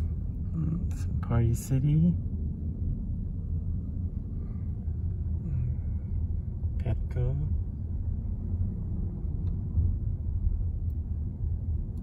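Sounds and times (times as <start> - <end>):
road and tyre rumble in car cabin: 0.0 - 12.0.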